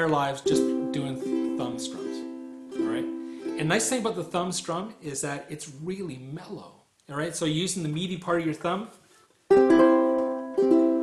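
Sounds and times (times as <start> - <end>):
ukulele thumb strum: 0.0 - 3.6, 9.5 - 11.0.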